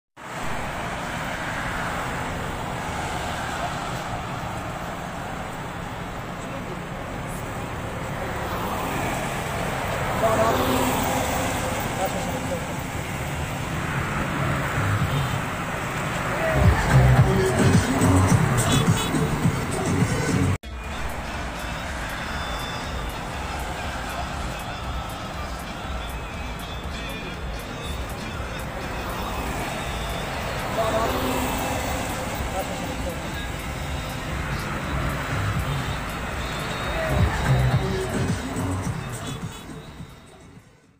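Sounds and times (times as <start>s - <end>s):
roadside traffic: 0.2s - 40.9s
indistinct voices: 2.5s - 40.9s
music: 16.5s - 31.0s, 31.8s - 40.9s.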